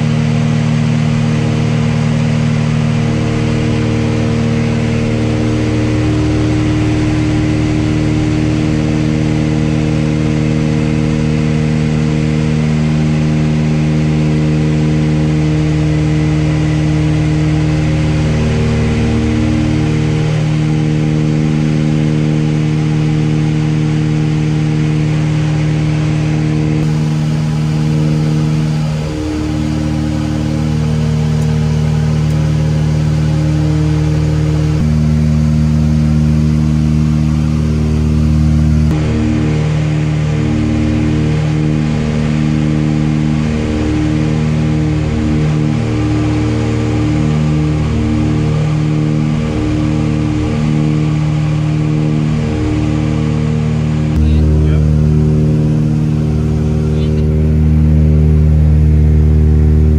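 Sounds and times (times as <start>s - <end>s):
propeller plane engines droning: 0.0s - 59.9s.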